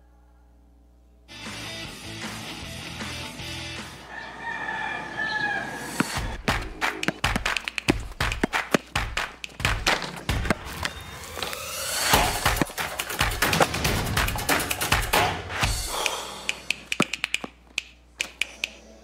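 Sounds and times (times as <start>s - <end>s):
music: 1.3s - 4.0s, 10.4s - 16.8s
rooster crowing: 4.0s - 6.4s
basketball dribbling thumps: 6.0s - 10.9s.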